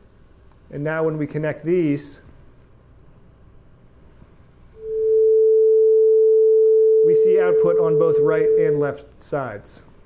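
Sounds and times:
steady pure sine tone: 4.8s - 9.0s.

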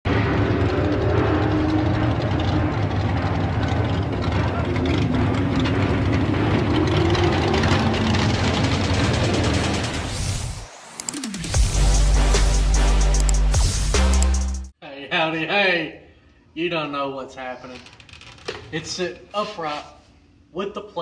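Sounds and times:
race car engine at low revs: 0.1s - 10.3s.

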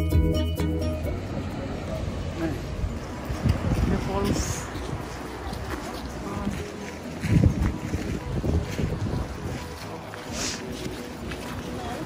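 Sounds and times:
wind gusting on microphone: 2.0s - 10.9s.

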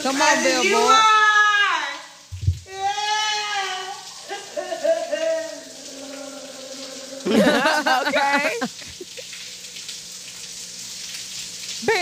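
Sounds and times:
shower water running: 0.0s - 12.0s
short low thump: 2.3s - 2.7s.

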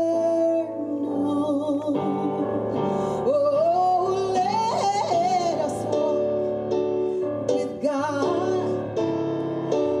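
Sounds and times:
woman singing into microphone: 0.0s - 6.3s, 7.5s - 9.0s.

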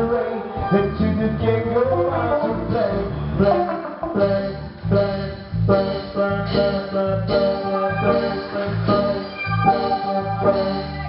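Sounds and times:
live reggae band playing: 0.0s - 11.0s.

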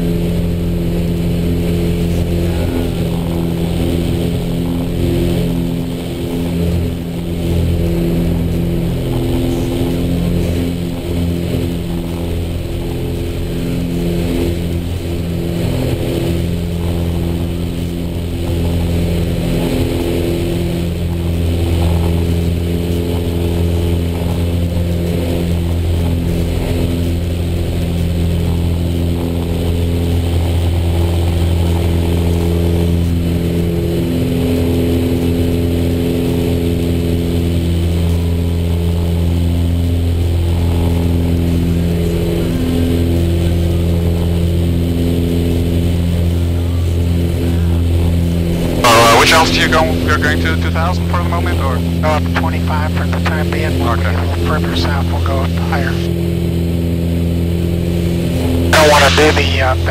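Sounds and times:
propeller plane engines droning: 0.0s - 59.9s.

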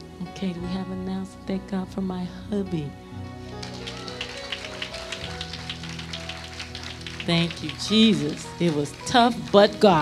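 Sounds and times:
keyboard chords: 0.0s - 10.0s
people clapping: 3.5s - 10.0s.

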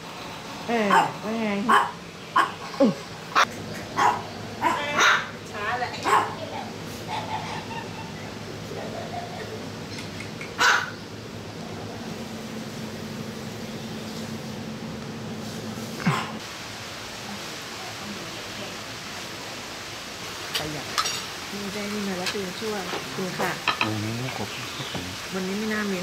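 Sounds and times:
dog barking: 0.9s - 2.6s, 3.4s - 5.4s, 6.0s - 6.5s, 10.6s - 11.0s, 16.0s - 16.4s.

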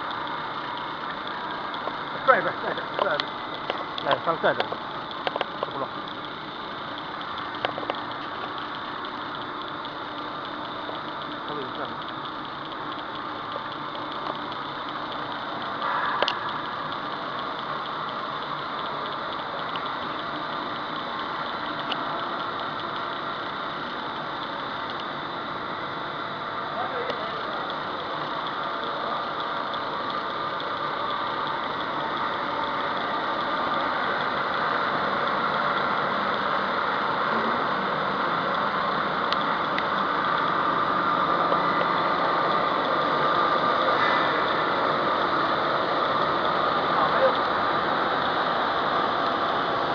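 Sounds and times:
faint steady hum: 0.0s - 49.9s
machine mechanical drone: 0.0s - 49.9s.

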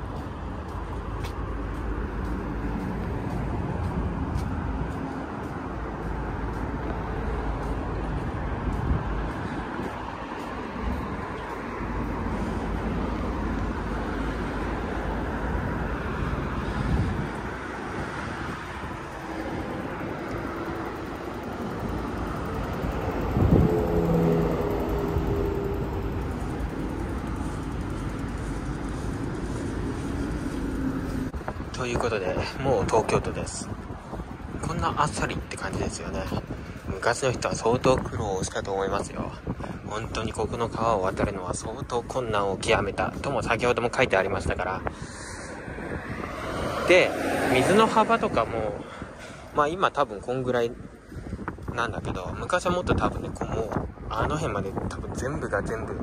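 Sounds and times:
vehicle engine hum passing: 0.0s - 36.9s, 44.3s - 49.6s
road traffic rushing: 0.0s - 56.0s.

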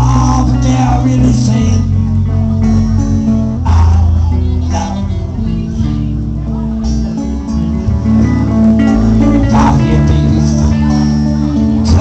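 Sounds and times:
band playing guitars: 0.0s - 12.0s.

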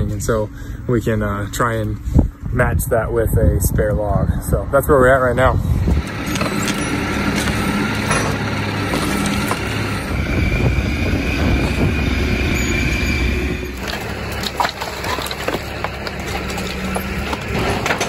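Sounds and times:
diesel engine running: 0.0s - 3.2s, 4.3s - 18.0s
steady whine: 0.0s - 18.0s
knocks and clatter: 6.1s - 10.0s, 13.8s - 18.0s.

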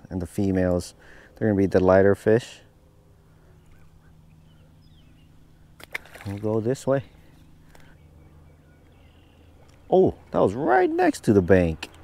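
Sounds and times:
faint bird chirps: 3.3s - 5.7s, 7.1s - 10.1s
fish splashing into water: 5.8s - 6.5s.

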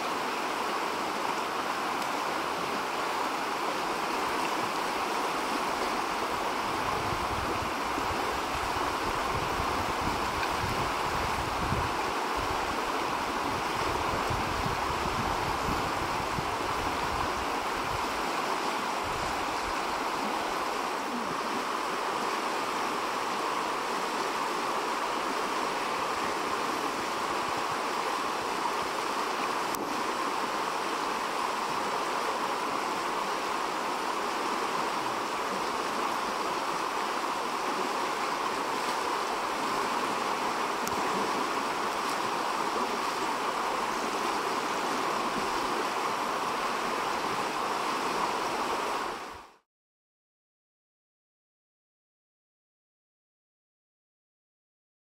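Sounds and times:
river water rushing: 0.0s - 49.6s.

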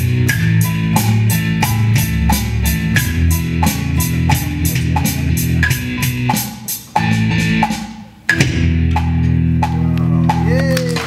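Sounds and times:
electronic drum kit rock beat: 0.0s - 11.0s
guitar-led backing track: 0.0s - 11.0s.

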